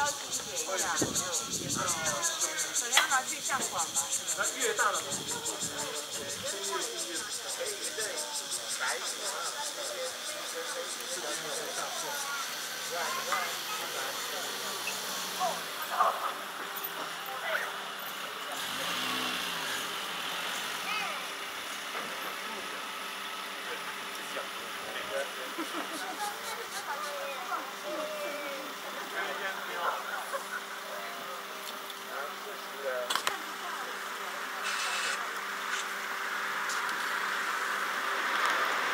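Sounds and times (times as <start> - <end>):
outdoor background noise: 0.0 - 38.9
motor vehicle passing: 18.2 - 22.6, 35.7 - 38.9
short high hiss: 34.6 - 36.0.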